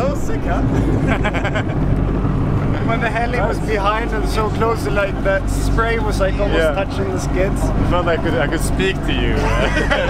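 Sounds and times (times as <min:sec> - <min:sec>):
speedboat engine rumble: 0:00.0 - 0:10.0
man laughing: 0:00.6 - 0:01.9, 0:09.3 - 0:10.0.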